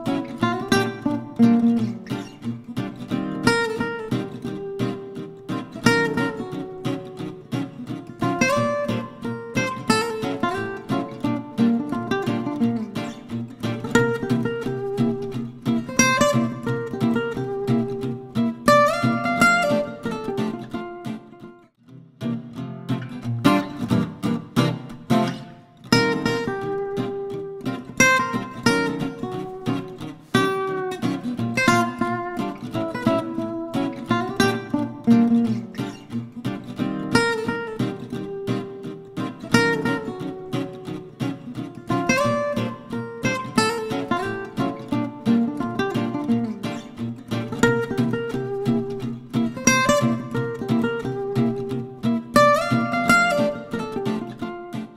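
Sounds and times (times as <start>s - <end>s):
acoustic guitar music: 0.0s - 54.9s.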